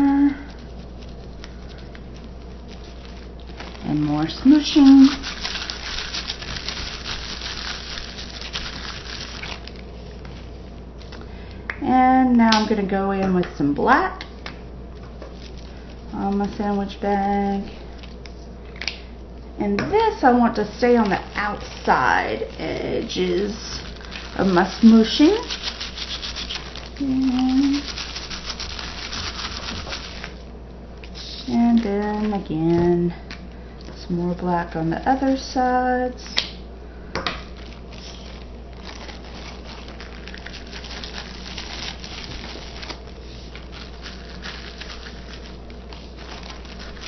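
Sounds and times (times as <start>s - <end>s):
plastic bag crinkling: 0.0s - 11.4s, 14.9s - 18.3s, 20.6s - 30.4s, 37.4s - 47.0s.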